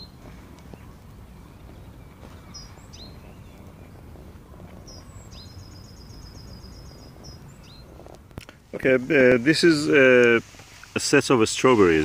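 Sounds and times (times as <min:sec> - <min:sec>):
low outdoor rumble: 0:00.0 - 0:12.0
songbird singing: 0:00.0 - 0:12.0.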